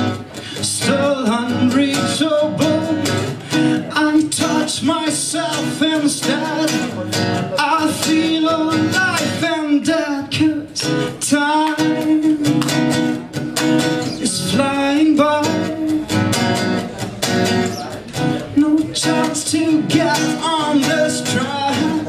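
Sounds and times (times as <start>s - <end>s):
acoustic guitar strumming: 0.0s - 22.0s
man singing: 0.0s - 22.0s.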